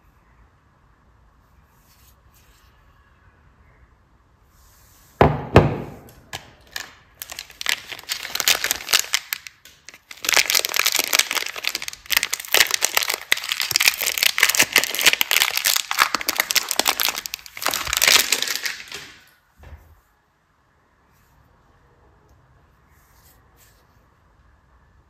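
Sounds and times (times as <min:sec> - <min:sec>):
plastic wrapper crinkling: 0:06.3 - 0:19.3.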